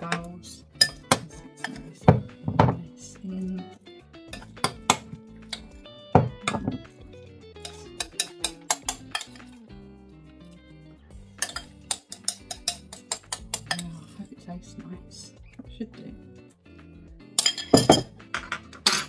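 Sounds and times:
background music: 0:00.0 - 0:19.0
metal spoon clinking on glass bowl: 0:00.8 - 0:01.8, 0:07.6 - 0:09.5, 0:11.4 - 0:13.8, 0:17.4 - 0:18.1.

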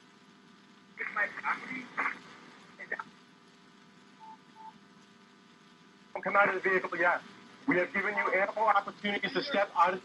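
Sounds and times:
faint electronic beeps: 0:04.2 - 0:04.8.

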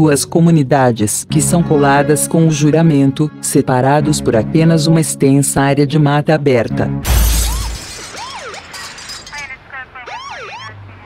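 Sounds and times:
loud shattering crash: 0:07.0 - 0:09.6
sirens wailing: 0:09.4 - 0:11.0.

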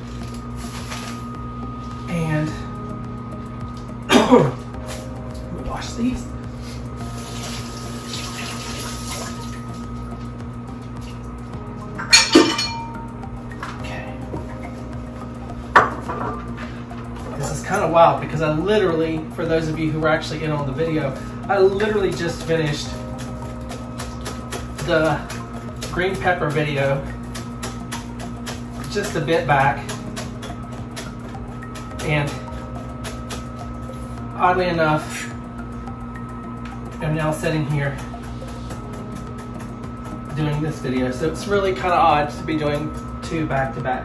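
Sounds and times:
microwave oven humming: 0:00.0 - 0:44.0
kitchen tap running: 0:07.2 - 0:09.9
dishes clattering: 0:12.0 - 0:13.0.

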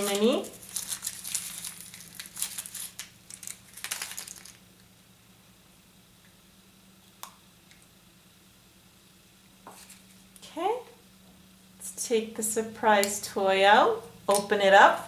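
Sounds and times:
foil wrapper crinkling and tearing: 0:00.0 - 0:04.8.

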